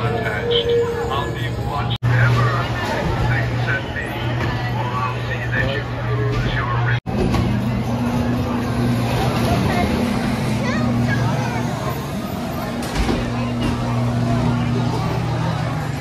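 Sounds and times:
people's voices: 0.0s - 16.0s
ride cars rolling on track: 0.0s - 16.0s
ride machinery low hum: 0.0s - 16.0s.

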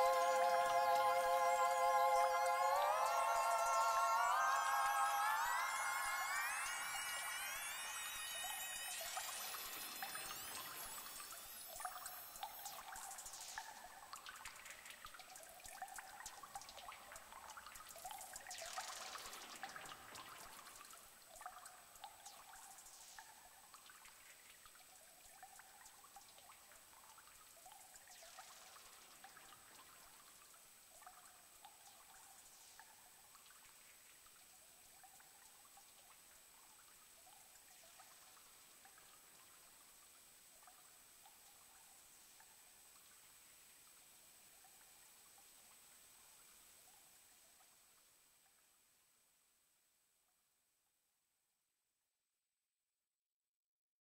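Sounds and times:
synthesizer blips: 0.0s - 11.9s
falling synth pitch sweeps: 0.0s - 12.9s
high trickling noise: 0.0s - 14.6s.

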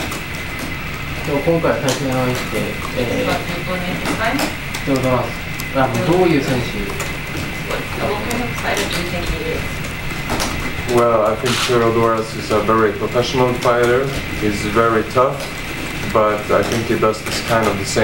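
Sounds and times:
steady background hum: 0.0s - 18.0s
person asking a question: 1.3s - 9.7s.

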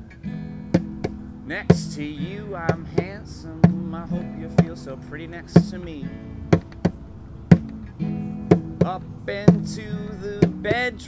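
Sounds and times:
acoustic guitar strummed: 0.0s - 11.0s.

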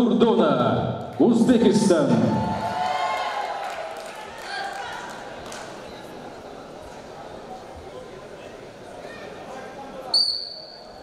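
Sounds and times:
faint echoing voices: 1.1s - 11.0s.

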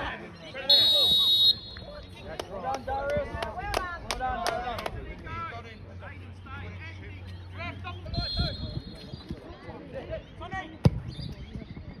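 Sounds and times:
soccer ball kick thud: 10.8s - 11.1s.

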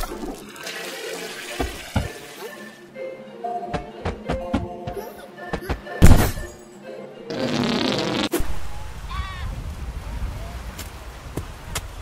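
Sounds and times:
toilet flushing: 0.0s - 2.4s.

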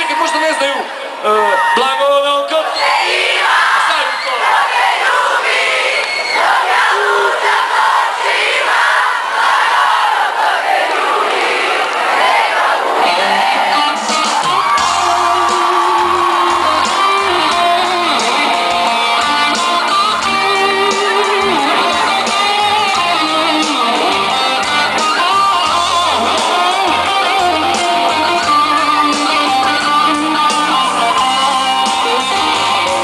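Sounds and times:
crowd singing and shouting: 2.4s - 33.0s
rock band guitar and bass: 13.6s - 33.0s.

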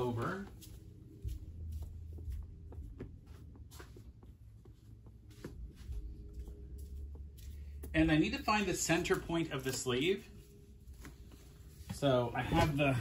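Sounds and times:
low steady hum: 0.0s - 13.0s
satin fabric rustling: 0.0s - 13.0s.

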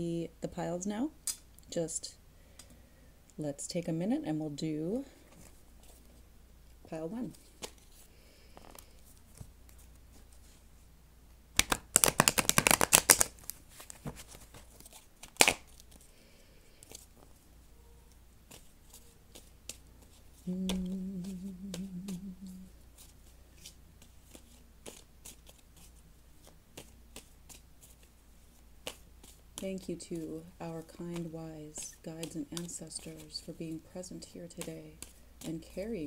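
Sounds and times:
cards being riffle-shuffled: 7.3s - 10.6s, 11.6s - 16.1s, 18.5s - 33.9s, 34.5s - 36.0s
sharp snap of cards: 15.2s - 15.7s
person humming low: 20.4s - 22.8s.

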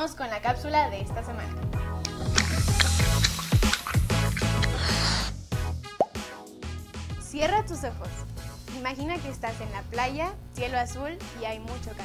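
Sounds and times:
cartoon bubble pop: 2.0s - 4.8s, 6.0s - 6.3s.

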